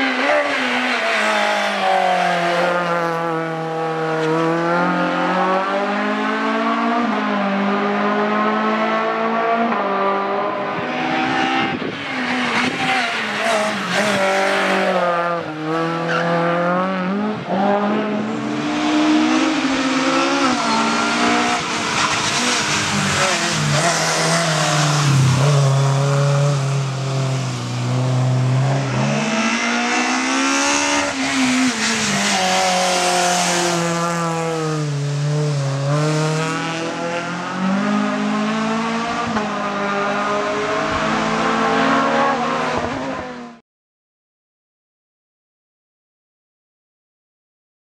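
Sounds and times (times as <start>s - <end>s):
race car engine revving: 0.0s - 43.5s.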